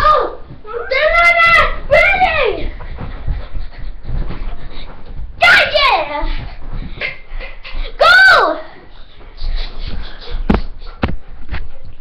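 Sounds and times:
dog panting: 0:02.5 - 0:08.0, 0:08.7 - 0:11.9.

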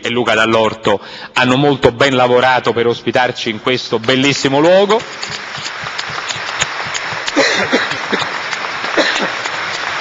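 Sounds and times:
audience applauding: 0:04.6 - 0:10.0.

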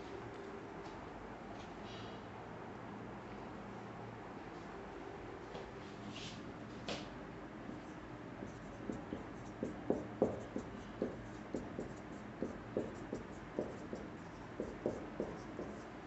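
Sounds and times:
marker pen writing on whiteboard: 0:07.7 - 0:16.0.

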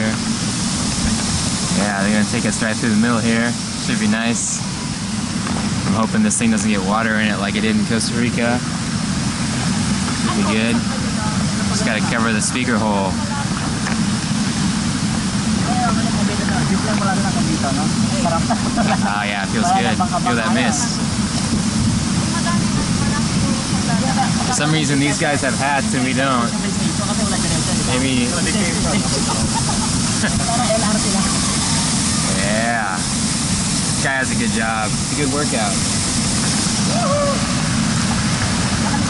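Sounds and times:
waterfall rushing: 0:00.0 - 0:39.0
faint voices: 0:15.4 - 0:21.4, 0:22.1 - 0:33.2.

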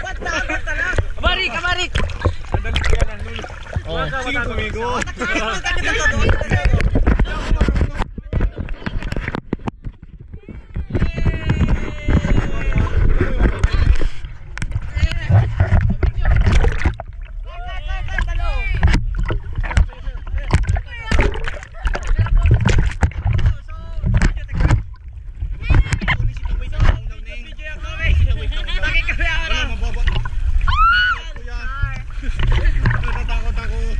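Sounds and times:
low rumble of water on microphone: 0:00.0 - 0:33.9
water splashing and sloshing: 0:00.0 - 0:33.9
people shouting excitedly: 0:30.6 - 0:31.4.

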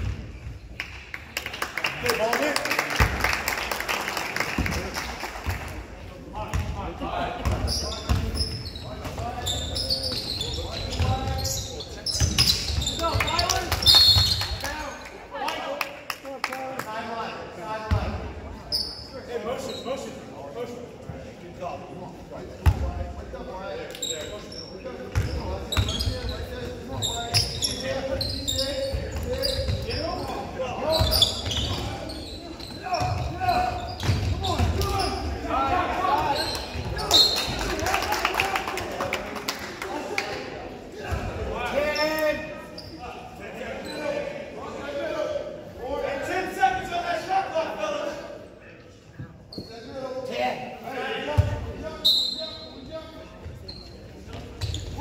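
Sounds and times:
spectators' voices echoing: 0:00.0 - 0:55.0
sneakers squeaking on hardwood: 0:07.4 - 0:14.5, 0:24.0 - 0:37.6, 0:49.5 - 0:49.9, 0:51.4 - 0:55.0
referee's whistle: 0:13.8 - 0:14.5, 0:37.0 - 0:37.5, 0:52.0 - 0:52.8.

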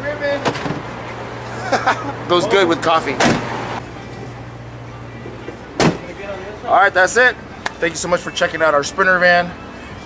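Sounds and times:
van door thumping shut: 0:03.2 - 0:03.6, 0:05.8 - 0:06.1.

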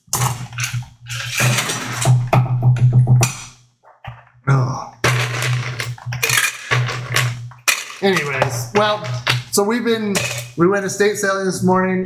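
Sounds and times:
metal cocktail shaker rattling: 0:06.2 - 0:09.3, 0:10.2 - 0:10.6.

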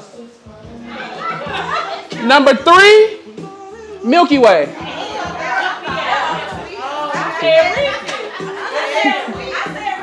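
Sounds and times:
background music: 0:00.0 - 0:10.0
people talking over each other: 0:04.7 - 0:10.0.

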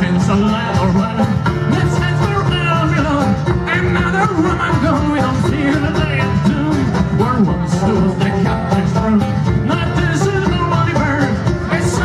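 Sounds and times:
banjo picked briskly: 0:00.0 - 0:12.0
frame drum: 0:00.0 - 0:12.0.

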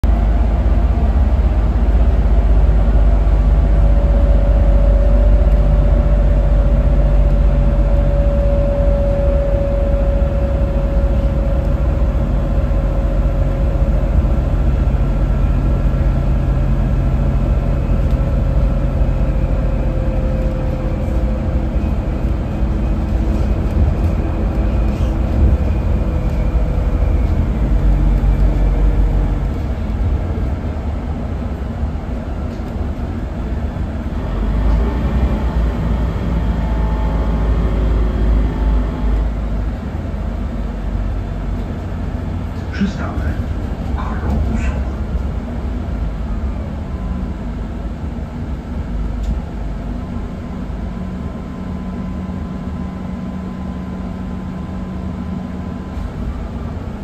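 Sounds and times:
bus engine and road rumble: 0:00.0 - 0:57.0
driveline whine: 0:03.0 - 0:30.8.

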